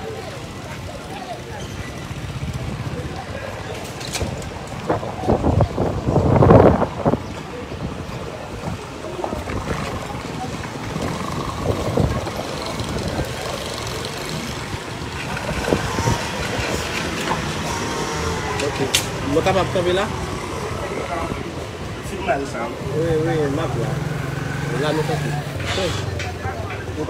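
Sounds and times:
faint voices: 0.0 - 27.0
wind buffeting microphone: 2.1 - 17.8.

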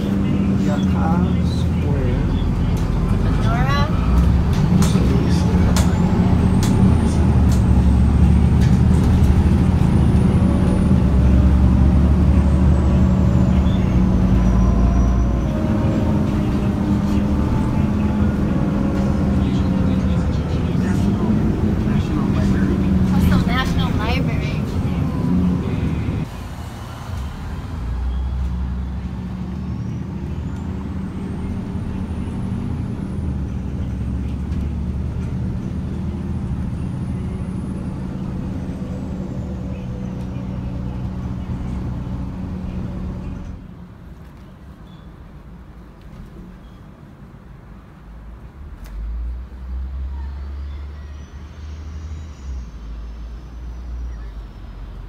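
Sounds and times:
bus engine humming: 0.0 - 55.0.

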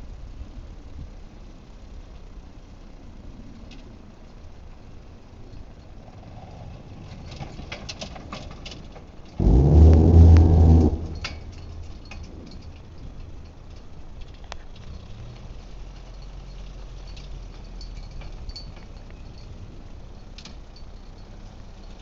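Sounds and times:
light clicks and rattles: 3.6 - 22.0
loud low drone: 9.4 - 12.0.

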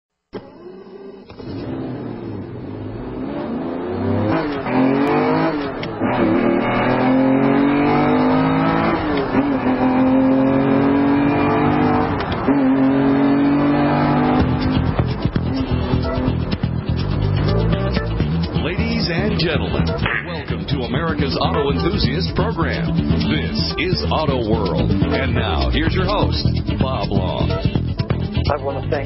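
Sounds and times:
car engine accelerating through gears: 0.4 - 26.5.

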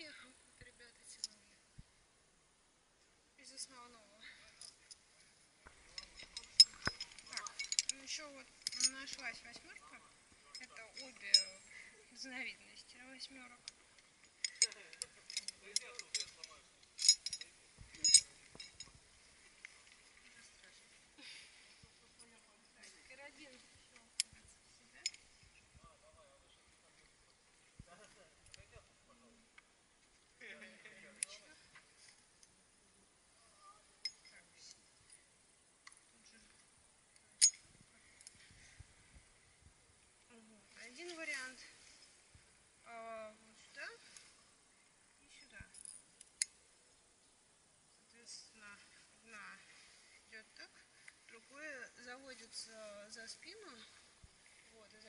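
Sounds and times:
metal carabiners clinking: 5.7 - 11.9, 13.3 - 19.1, 24.9 - 25.3, 34.0 - 35.2, 37.4 - 38.4.

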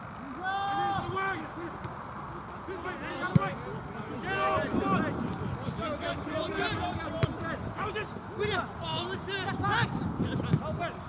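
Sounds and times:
spectators talking: 0.0 - 11.0
football being kicked: 3.3 - 3.6, 7.1 - 7.4, 10.5 - 10.8.

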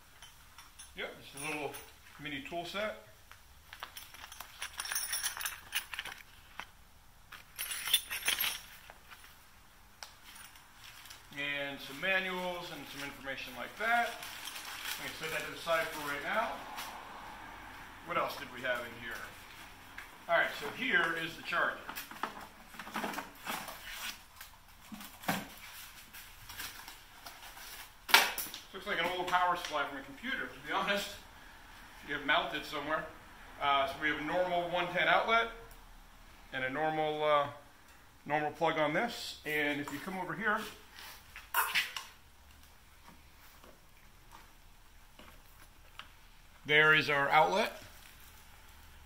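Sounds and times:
metal wrenches clinking: 0.1 - 2.0, 3.7 - 6.3, 7.3 - 8.9
handling rustles: 3.3 - 17.0.

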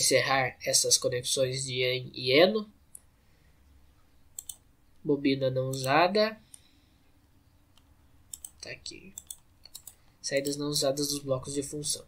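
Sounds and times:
computer mouse clicks: 4.3 - 5.0, 7.7 - 10.6.

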